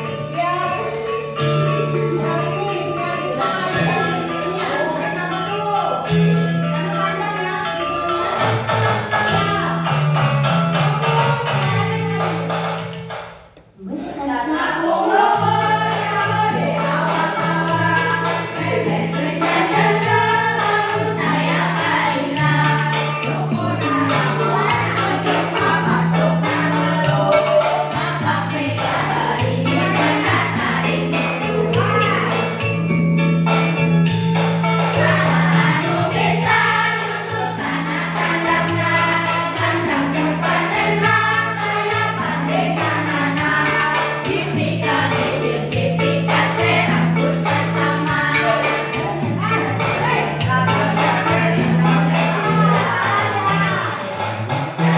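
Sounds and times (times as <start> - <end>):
children singing together: 0.0 - 5.6, 6.8 - 12.8, 13.8 - 32.7, 34.8 - 54.9
instrumental accompaniment: 0.0 - 54.9
recorded music through loudspeaker: 0.0 - 54.9.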